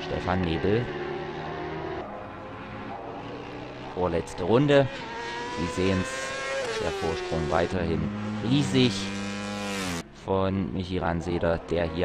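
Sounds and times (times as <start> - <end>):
racing motorcycle engines at high revs: 0.0 - 10.0.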